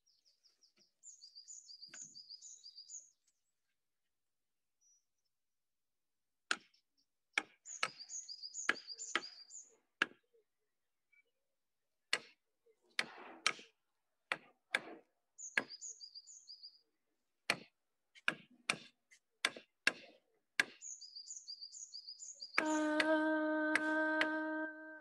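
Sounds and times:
bird chirping: 0:00.0 - 0:03.7, 0:06.7 - 0:09.9, 0:15.4 - 0:16.9, 0:20.6 - 0:23.4
woman singing a held note: 0:22.6 - 0:25.0.

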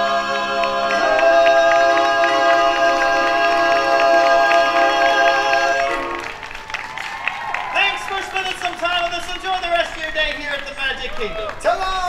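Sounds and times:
barbershop quartet singing: 0:00.0 - 0:06.4.

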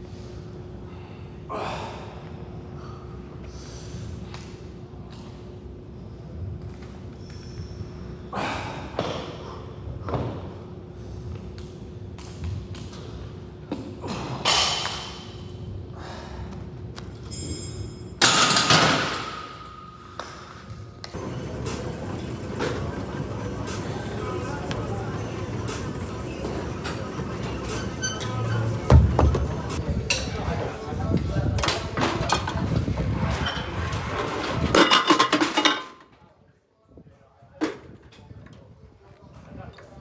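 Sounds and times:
high metallic ringing: 0:17.3 - 0:18.2
background voices: 0:21.1 - 0:30.0.

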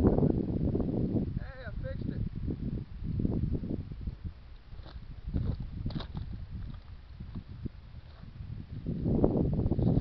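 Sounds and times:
footsteps on muddy ground: 0:04.6 - 0:08.4.

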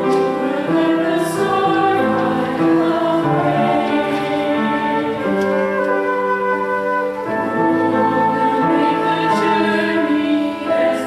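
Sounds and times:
church choir singing: 0:00.0 - 0:11.0
piano accompaniment: 0:00.0 - 0:11.0.

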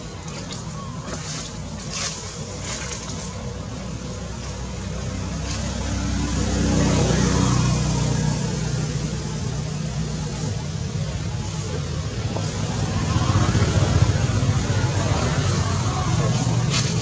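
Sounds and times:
engine rumbling: 0:00.0 - 0:17.0
outdoor background hiss: 0:00.0 - 0:17.0.

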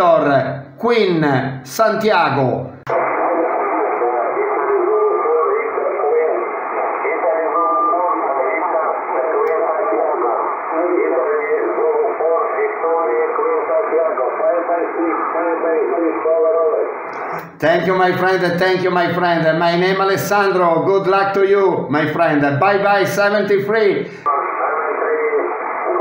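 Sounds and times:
thin radio speech over loudspeaker: 0:02.9 - 0:26.0.

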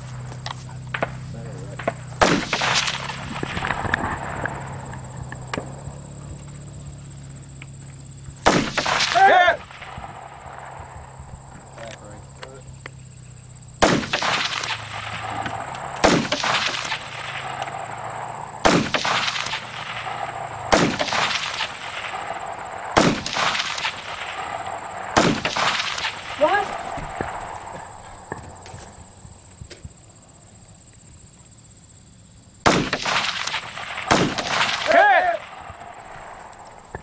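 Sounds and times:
fainter second crack: 0:00.4 - 0:06.0
rifle shots: 0:00.8 - 0:06.0, 0:08.4 - 0:11.0, 0:13.8 - 0:27.9, 0:32.6 - 0:36.6.

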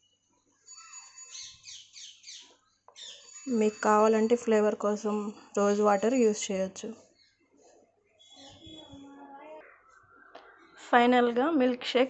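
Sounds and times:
high-pitched chirping: 0:00.7 - 0:04.3, 0:08.2 - 0:10.7.

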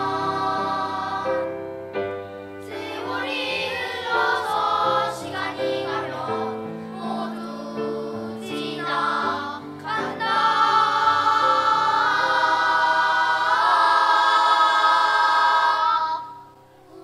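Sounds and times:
children's choir singing: 0:00.0 - 0:01.9, 0:02.6 - 0:17.0.

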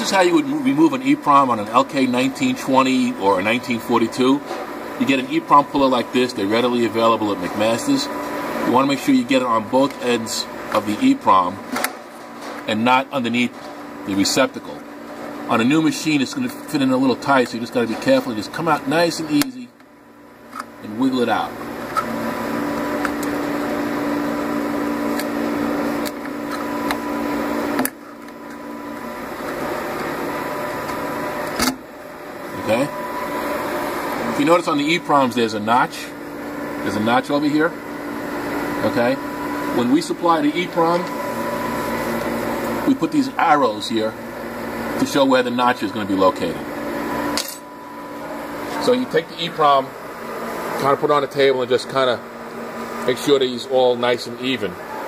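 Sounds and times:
electrical hum with low tones: 0:00.0 - 0:55.0.

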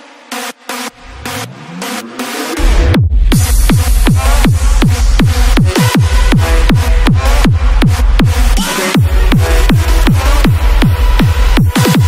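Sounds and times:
synth melody: 0:00.3 - 0:07.0
hardstyle kick drum: 0:02.6 - 0:12.0.

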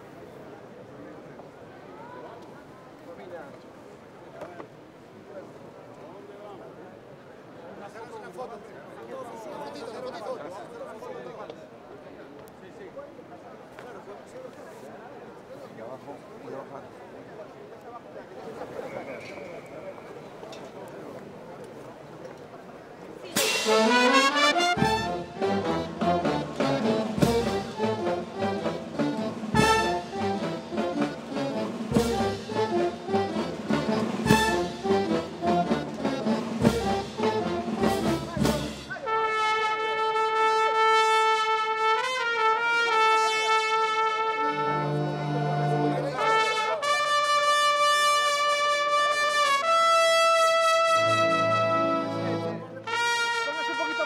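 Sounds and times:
heavy drum strokes: 0:23.4 - 0:39.0
brass band playing: 0:23.4 - 0:54.0.

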